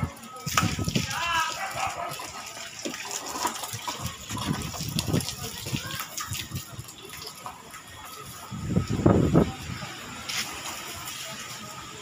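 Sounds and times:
plastic toy wheels rolling on concrete: 0.0 - 9.5.

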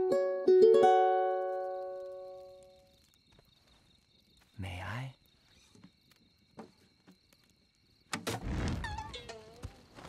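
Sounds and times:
cartoon fire whoosh: 8.3 - 9.2.

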